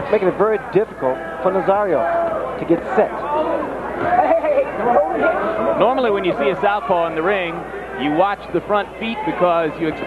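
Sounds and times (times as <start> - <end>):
men talking: 0.0 - 3.8, 4.8 - 10.0
arena crowd murmur: 0.0 - 10.0.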